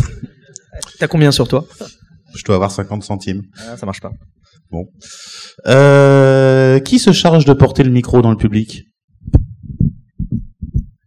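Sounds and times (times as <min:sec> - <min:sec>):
microphone handling knock: 0:09.2 - 0:11.0
muffled low thumps: 0:09.2 - 0:11.0.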